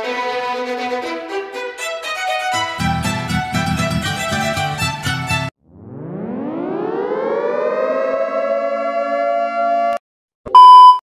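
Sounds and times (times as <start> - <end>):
siren-like tone winding up: 5.6 - 10.0.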